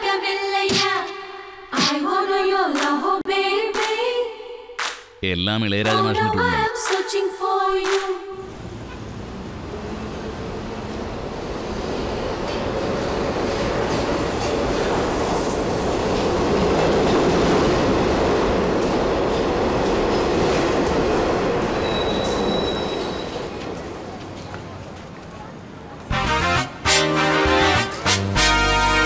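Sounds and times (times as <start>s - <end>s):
train wheel squeal: 21.7s - 23.7s.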